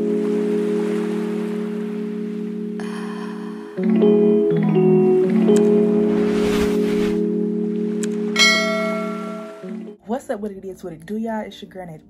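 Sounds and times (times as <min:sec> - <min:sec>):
held music chord: 0:00.0 - 0:10.0
bright high shimmer: 0:08.4 - 0:09.7.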